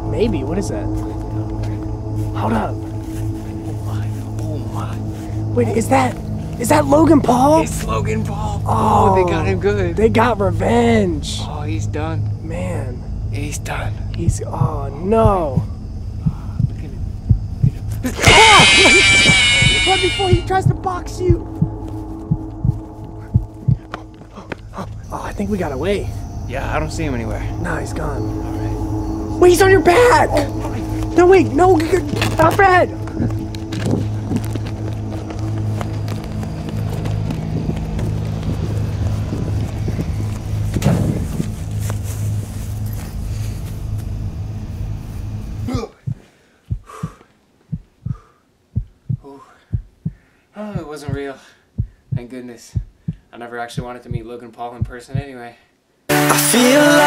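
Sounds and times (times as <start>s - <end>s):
steady low hum: 0.0s - 55.4s
dull low thumps: 13.0s - 55.4s
voiced gasp: 45.7s - 47.3s
soft breaths: 46.0s - 53.4s.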